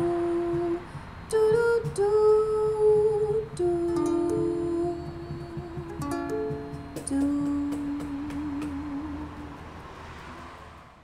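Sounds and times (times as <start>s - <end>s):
woman humming: 0.0s - 9.5s
softly strummed ukulele: 0.0s - 9.9s.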